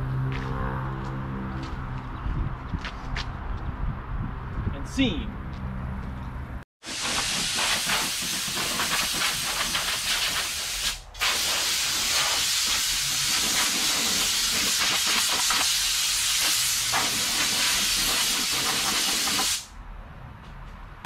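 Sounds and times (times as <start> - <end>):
compressed air blow gun hissing: 6.8 - 19.7.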